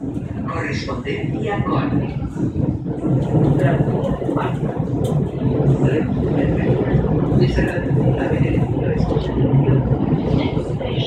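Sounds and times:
train rumbling in a tunnel: 0:00.0 - 0:11.0.

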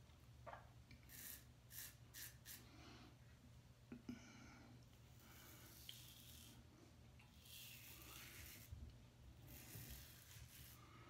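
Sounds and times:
safety razor scratching stubble: 0:09.5 - 0:10.8.

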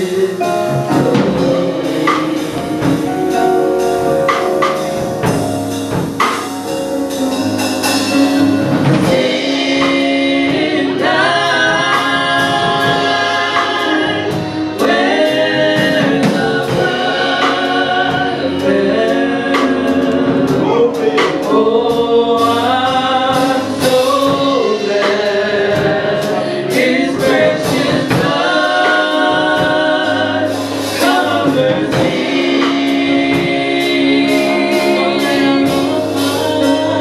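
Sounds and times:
women singing gospel: 0:00.0 - 0:06.4, 0:07.8 - 0:37.0
band with drum kit: 0:00.0 - 0:37.0.

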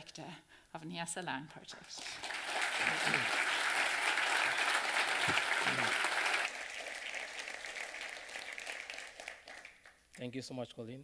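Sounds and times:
audience applauding: 0:02.2 - 0:10.0.

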